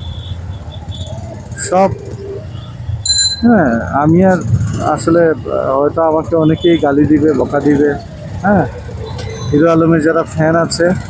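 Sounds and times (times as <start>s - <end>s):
motorcycle engine rumbling: 0.0s - 11.0s
person speaking: 3.1s - 4.0s.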